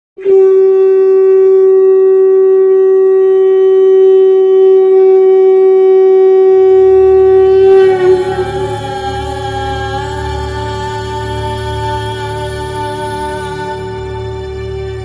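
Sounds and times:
conch shell blown: 0.2s - 15.0s
low drone: 5.7s - 15.0s.

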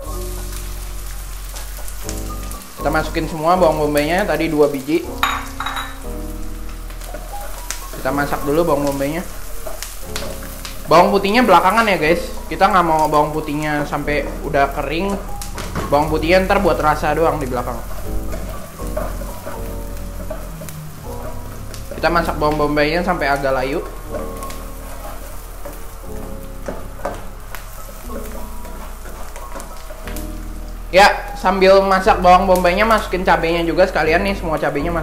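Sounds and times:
background music: 0.0s - 35.0s
onions sizzling in hot oil: 0.0s - 35.0s
spatula scraping and tapping pan: 4.2s - 13.6s, 14.2s - 30.9s.

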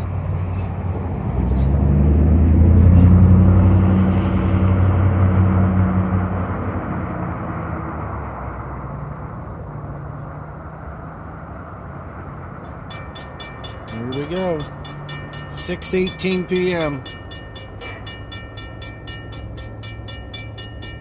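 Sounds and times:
low engine rumble: 0.0s - 21.0s
railroad crossing bell ringing: 12.6s - 21.0s.

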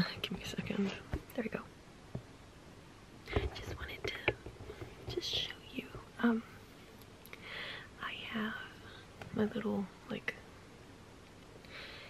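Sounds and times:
woman whispering: 0.0s - 1.7s, 3.3s - 4.4s, 5.0s - 6.6s, 8.0s - 10.4s.

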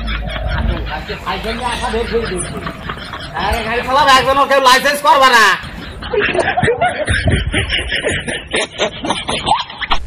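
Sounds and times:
snickering laughter: 0.0s - 4.3s, 5.6s - 10.0s
talking: 0.0s - 8.8s.

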